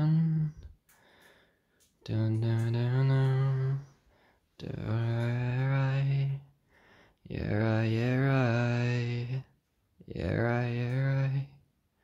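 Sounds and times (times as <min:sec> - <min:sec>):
low voice singing long syllable: 0:00.0 - 0:00.7, 0:02.0 - 0:04.0, 0:04.6 - 0:06.5, 0:07.2 - 0:11.6.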